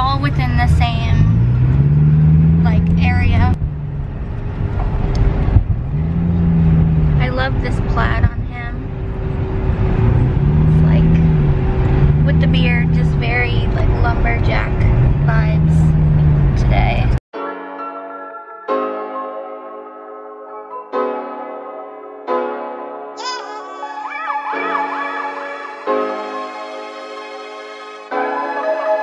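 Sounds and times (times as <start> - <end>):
car engine and road rumble: 0.0 - 17.2
low hum rising and falling: 0.0 - 17.2.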